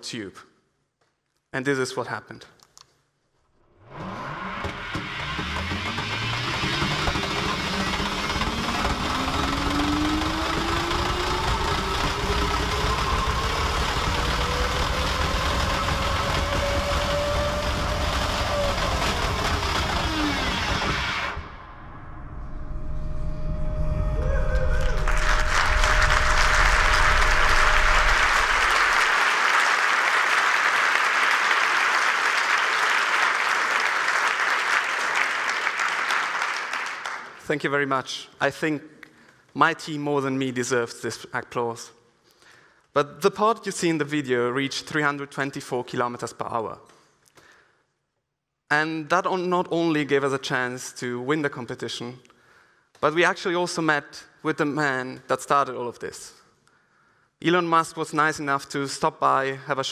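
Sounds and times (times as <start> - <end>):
electric motor whine: 3.8 - 21.6, 24.9 - 29.0
rushing noise: 3.9 - 29.3
audience applause: 5.1 - 20.9, 24.5 - 37.5.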